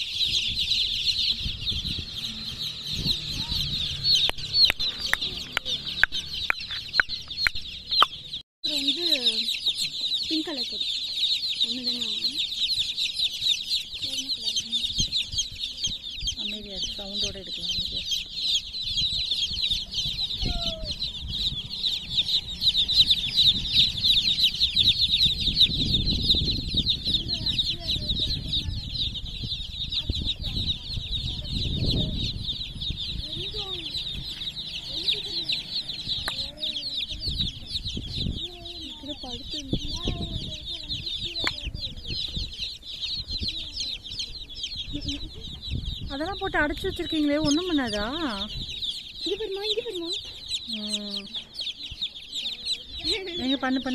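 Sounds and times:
baby chicks peeping: 0.0s - 53.9s.

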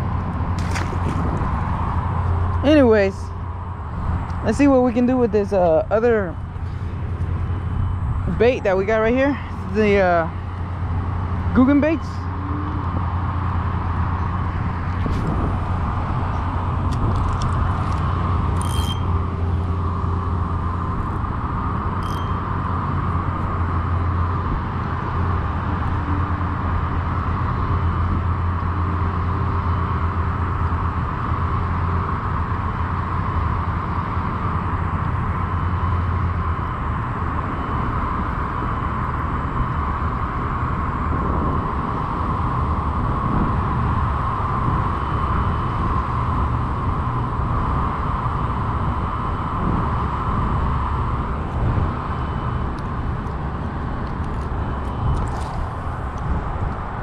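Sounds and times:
low rumble: 0.0s - 28.5s.

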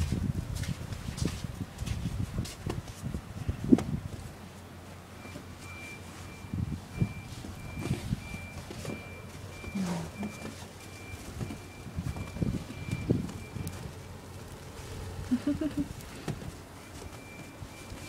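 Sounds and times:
electronic warning beeps: 5.2s - 14.0s, 16.8s - 18.0s.

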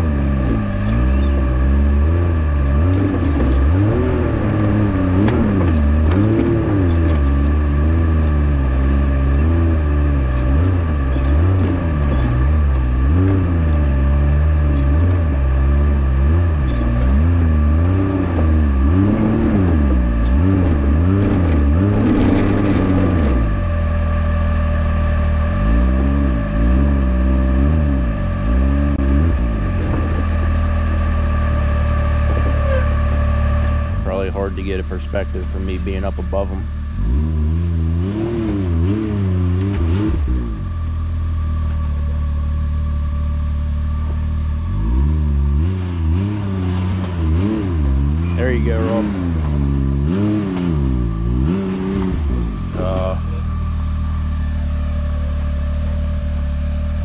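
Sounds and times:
steady whine: 0.0s - 37.9s
engine revving up and down: 0.0s - 57.0s.

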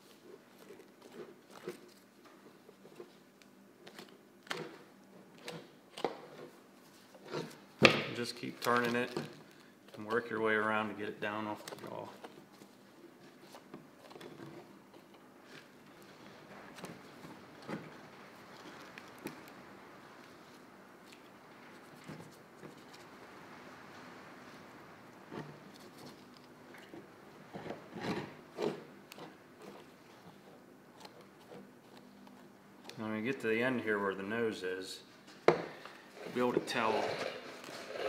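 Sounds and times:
handling noises: 11.3s - 33.4s.

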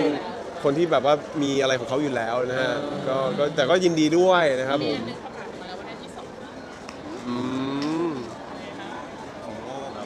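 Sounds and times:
faint crowd murmur: 0.0s - 10.0s.

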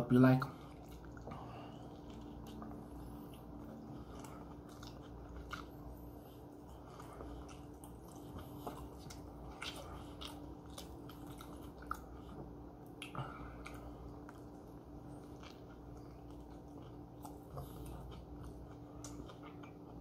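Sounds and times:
person chewing food: 0.5s - 20.0s.

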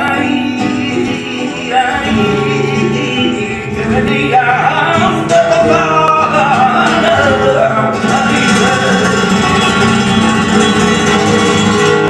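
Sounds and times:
flamenco guitar playing: 0.0s - 12.0s.

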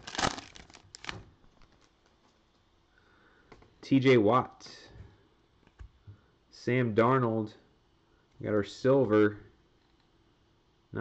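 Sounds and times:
foil wrapper tearing and crinkling: 0.0s - 1.9s.

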